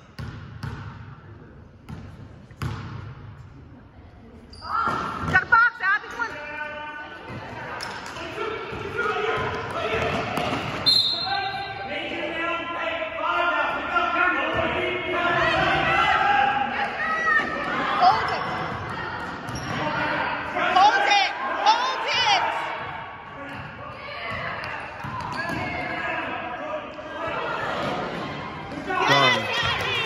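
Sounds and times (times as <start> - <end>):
basketball bouncing on court: 0.2 - 1.0, 1.9 - 3.1, 8.7 - 10.9, 18.4 - 19.8, 23.5 - 26.0
voices calling out in gym: 4.4 - 30.0.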